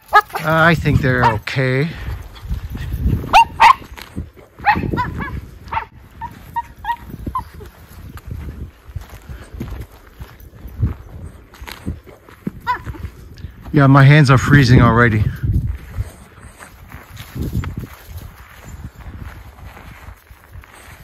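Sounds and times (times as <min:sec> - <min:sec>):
dog high yips: 0:00.0 - 0:00.5, 0:02.8 - 0:07.7, 0:12.6 - 0:13.0
dogs barking: 0:00.0 - 0:01.7, 0:02.8 - 0:07.7, 0:12.6 - 0:13.1.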